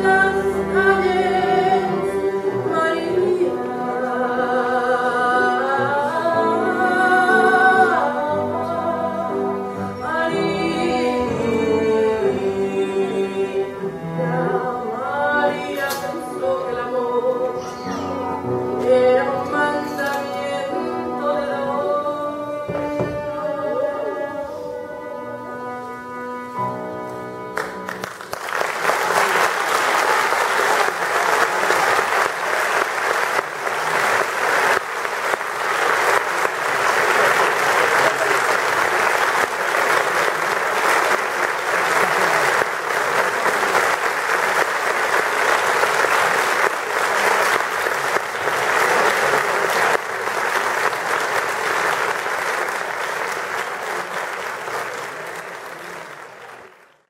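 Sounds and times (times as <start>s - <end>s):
piano and cello chord: 20.6s - 28.0s
audience applauding: 27.6s - 57.0s.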